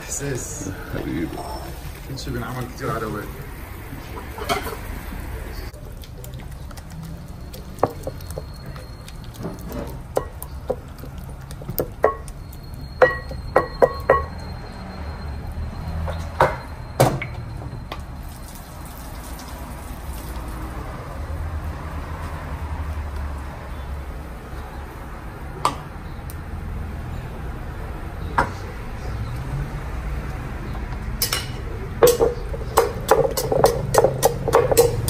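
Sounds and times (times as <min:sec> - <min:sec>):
pestle knocking in ceramic bowl: 0:32.0 - 0:35.0.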